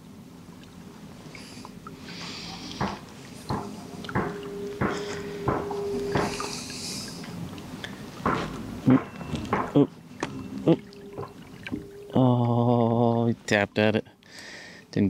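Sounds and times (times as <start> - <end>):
water noise: 0.0 - 13.9
faint steady hum: 0.0 - 15.0
pedal drive knocks and clicks: 2.8 - 6.5, 8.2 - 10.4.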